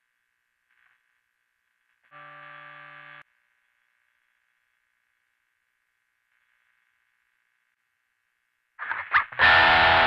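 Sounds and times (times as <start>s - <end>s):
distorted electric guitar note: 8.8s - 10.0s.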